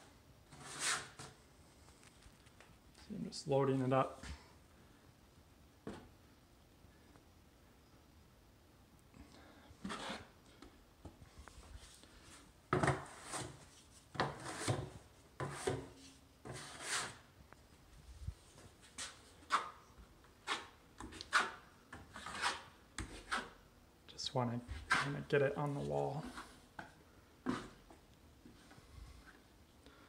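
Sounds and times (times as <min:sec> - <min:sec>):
drywall knife scraping mud pan: 0:00.5 - 0:01.4, 0:09.8 - 0:10.4, 0:12.8 - 0:17.3, 0:20.4 - 0:23.6, 0:24.7 - 0:25.6, 0:27.4 - 0:27.9.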